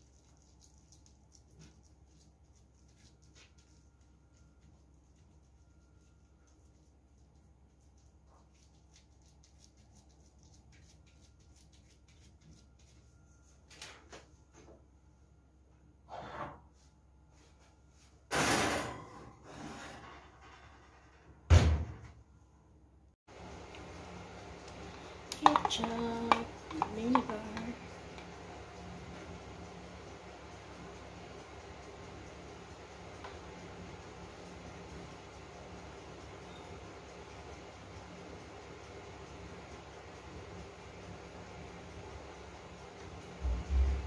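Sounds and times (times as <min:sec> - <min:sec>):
gloved hand patting meat mixture: 0:00.0 - 0:13.6, 0:25.3 - 0:28.4.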